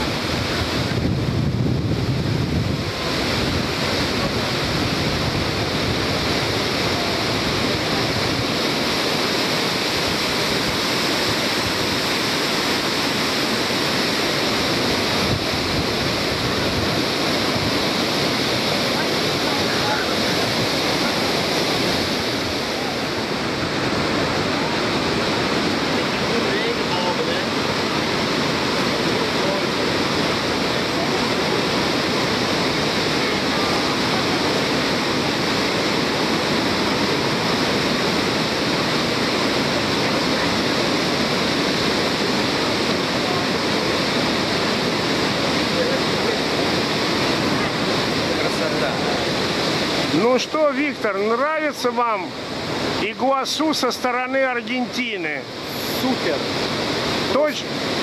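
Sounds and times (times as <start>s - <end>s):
waterfall rushing: 0.0s - 58.0s.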